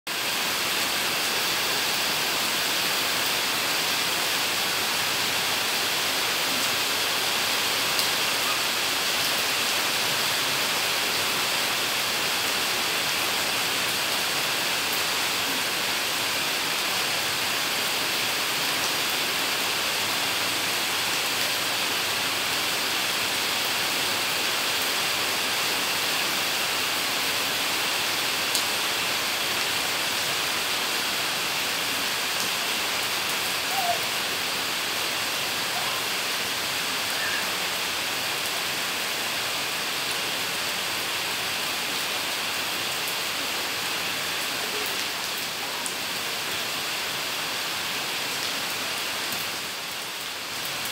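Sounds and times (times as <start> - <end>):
rain on wet paving: 0.1 - 50.9.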